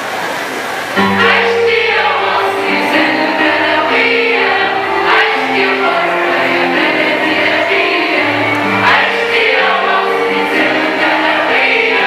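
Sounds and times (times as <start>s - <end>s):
children's choir singing: 0.0s - 12.0s
accordions: 1.0s - 12.0s.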